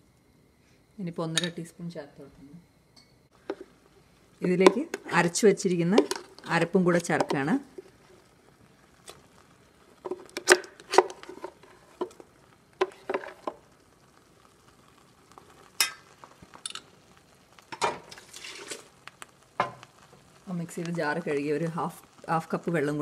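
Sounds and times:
spoon scraping: 18.1s - 18.9s.

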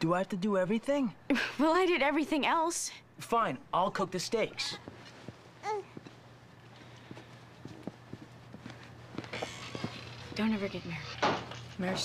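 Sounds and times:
footsteps on hard floor: 7.0s - 10.2s.

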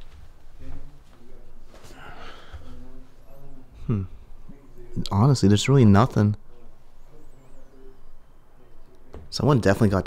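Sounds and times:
low hooting bird calls: 6.4s - 9.1s.

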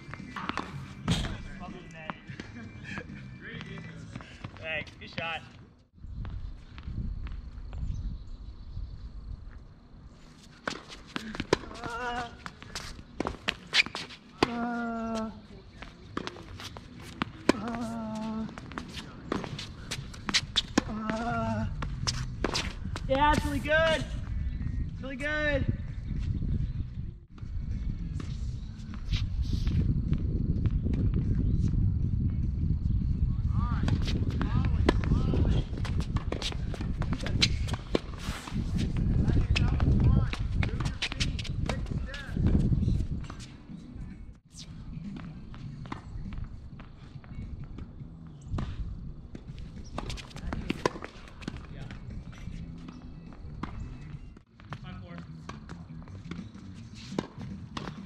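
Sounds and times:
racket hitting tennis ball: 0.1s - 1.6s, 10.6s - 15.2s, 16.1s - 23.7s, 33.8s - 43.5s, 48.6s - 51.7s, 55.5s - 58.0s
footsteps on court: 10.2s - 24.4s, 33.7s - 43.8s, 45.0s - 58.0s.

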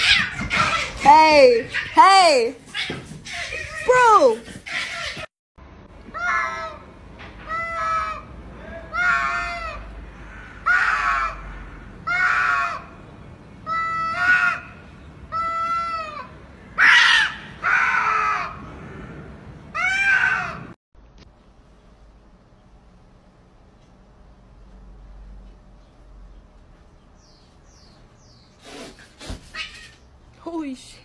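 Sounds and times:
cats yowling: 0.0s - 1.1s, 2.7s - 5.3s, 7.5s - 9.9s, 10.6s - 12.9s, 15.3s - 18.6s, 19.7s - 20.8s.

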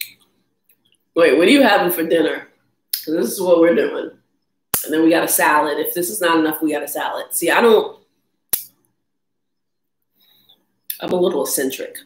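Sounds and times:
sharp click: 8.5s - 8.8s.

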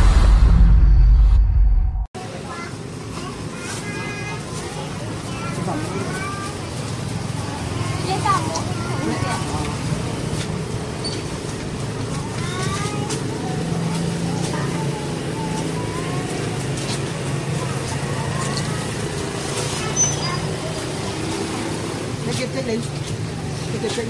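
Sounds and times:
voices talking: 2.2s - 24.0s.

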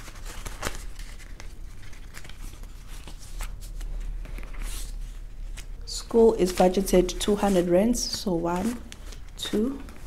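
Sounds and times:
banknotes and plastic rustling: 0.0s - 10.0s.

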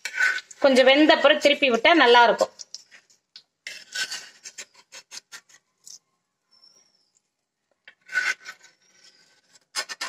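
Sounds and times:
metal spoon scraping a pan: 0.0s - 7.1s, 7.9s - 10.0s.

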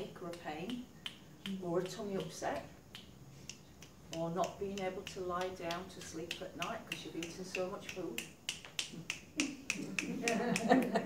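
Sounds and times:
fingers snapping: 0.3s - 10.8s.

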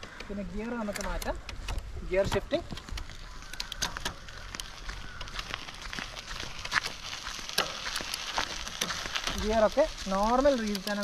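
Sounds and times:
bicycle tyres crackling on dirt: 0.0s - 11.0s.

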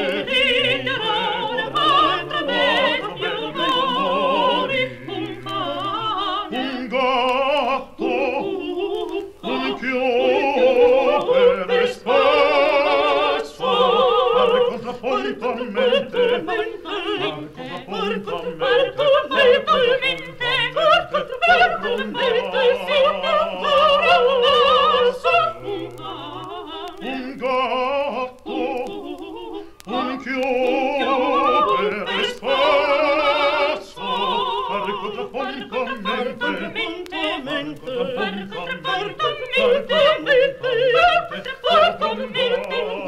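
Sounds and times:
operatic singing voice: 0.0s - 43.0s.

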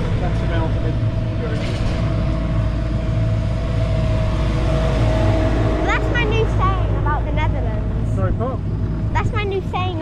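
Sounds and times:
diesel excavator engine rumbling: 0.0s - 10.0s
engine whine: 0.0s - 10.0s.

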